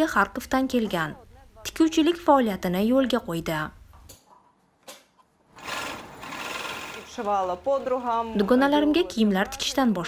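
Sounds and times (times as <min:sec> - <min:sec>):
overlock sewing machine running: 0:05.6 - 0:08.3.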